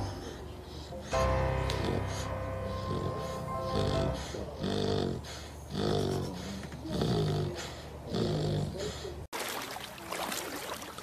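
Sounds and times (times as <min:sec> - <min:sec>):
puppy snoring: 0:00.1 - 0:09.1
dog splashing in water: 0:09.4 - 0:11.0.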